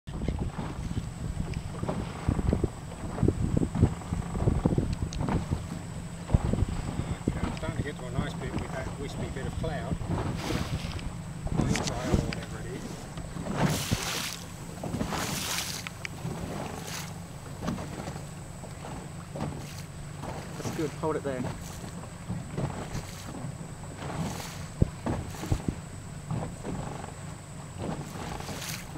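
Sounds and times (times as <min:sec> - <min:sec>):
water rushing around boat: 0:00.1 - 0:28.9
wind buffeting microphone: 0:00.1 - 0:28.9.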